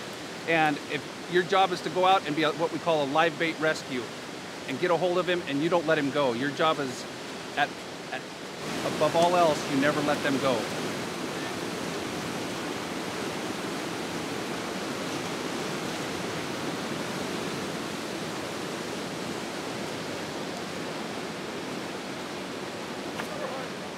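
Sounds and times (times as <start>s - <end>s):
river rapids rushing: 0.0s - 23.9s.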